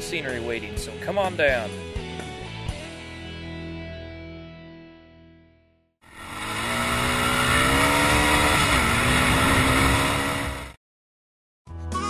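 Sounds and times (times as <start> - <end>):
atv engine at high throttle: 6.0 - 10.8.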